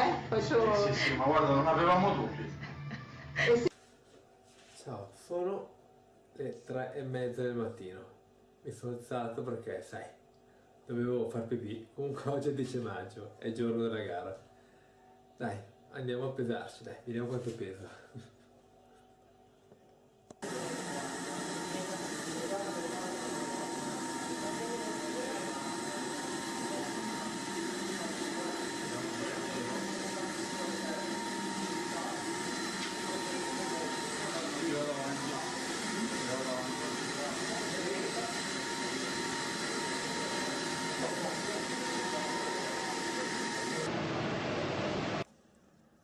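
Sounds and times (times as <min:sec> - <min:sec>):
chatter of many voices: 0:20.4 - 0:43.9.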